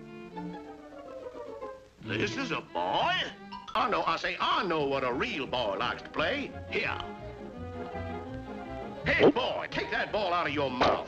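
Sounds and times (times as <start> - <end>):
sustained background music notes: 0.0 - 11.0.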